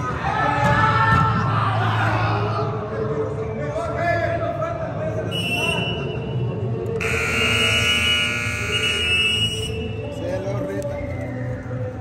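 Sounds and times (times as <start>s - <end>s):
hall noise from players and spectators: 0.0s - 12.0s
scoreboard buzzer: 7.0s - 9.7s.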